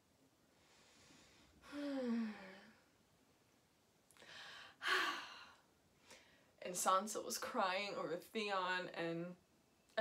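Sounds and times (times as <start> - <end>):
woman breathing in: 0.6 - 2.7, 4.2 - 6.6
woman sighing: 1.6 - 2.8, 4.2 - 5.6.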